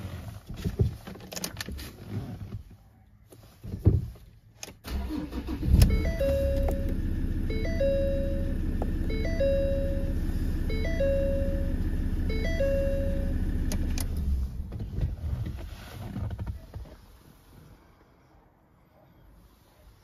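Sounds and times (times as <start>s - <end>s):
car engine cranking and idling: 4.6s - 17.5s
dashboard warning chime: 5.4s - 14.0s.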